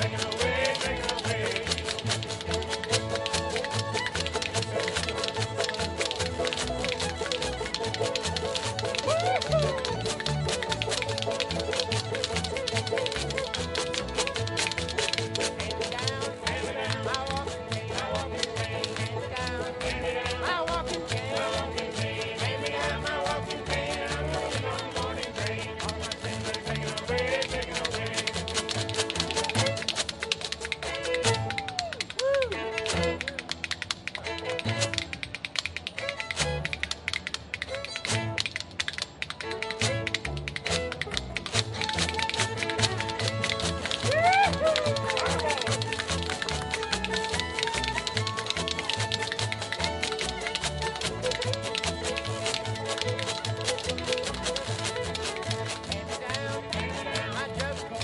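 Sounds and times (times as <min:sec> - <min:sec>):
fiddle melody: 0:00.0 - 0:58.0
upright bass: 0:00.0 - 0:58.0
washboard clattering rhythm: 0:00.0 - 0:58.0.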